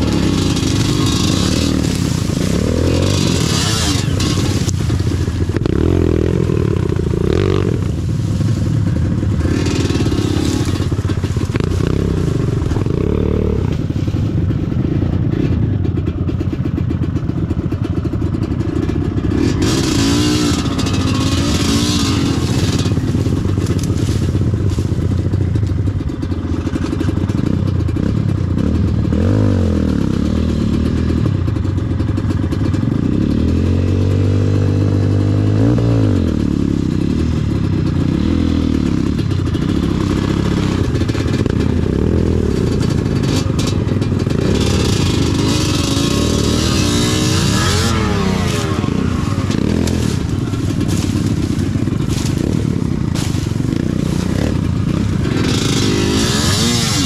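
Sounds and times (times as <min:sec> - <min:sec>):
grass swishing against bike: 0:00.0 - 0:14.3, 0:19.3 - 0:25.7, 0:39.6 - 0:57.0
dirt bike engine revving: 0:00.0 - 0:57.0.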